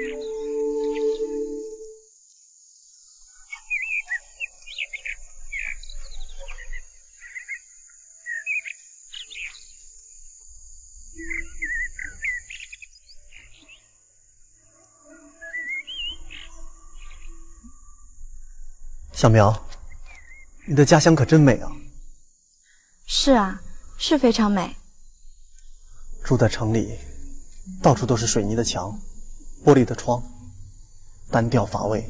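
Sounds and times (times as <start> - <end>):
birds chirping and calling: 0.0 - 1.8, 3.4 - 9.7, 11.1 - 13.9, 15.2 - 17.9, 19.2 - 21.8
high-pitched insect drone: 0.0 - 2.4, 23.0 - 32.0.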